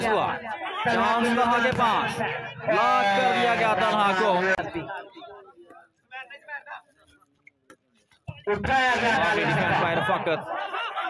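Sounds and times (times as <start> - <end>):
man commentating: 0.0 - 5.4, 8.4 - 11.0.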